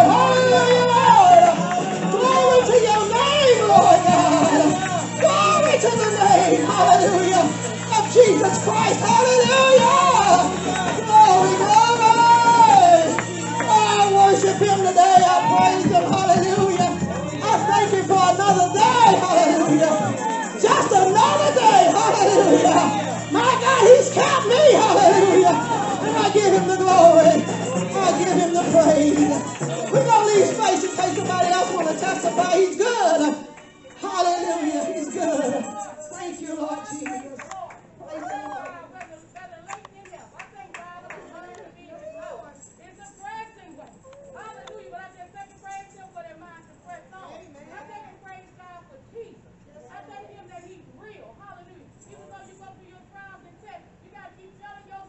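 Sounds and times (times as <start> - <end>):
hand claps: 0.0 - 35.8, 36.8 - 41.6
woman singing gospel over pa: 0.0 - 47.1.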